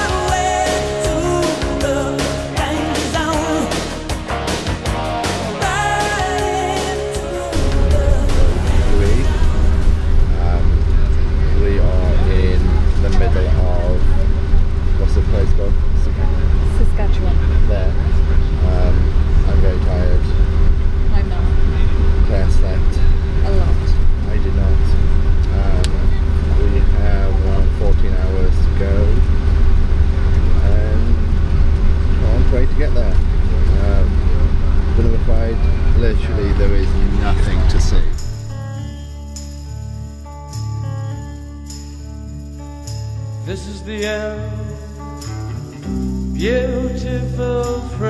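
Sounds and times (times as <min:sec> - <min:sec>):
bus cabin low drone: 0:05.6 - 0:38.8
constant hum: 0:05.7 - 0:38.8.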